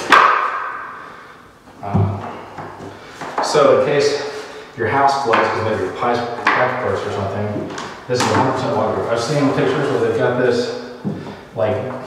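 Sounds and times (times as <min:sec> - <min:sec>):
floor plank clacking into place: 0:00.0 - 0:00.9.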